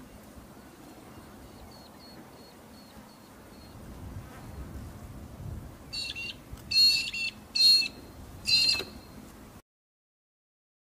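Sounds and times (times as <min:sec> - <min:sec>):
brolgas calling: 0:05.9 - 0:09.2.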